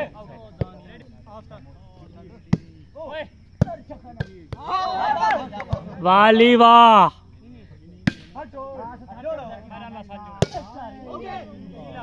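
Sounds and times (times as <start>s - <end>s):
players calling: 0.0s - 12.0s.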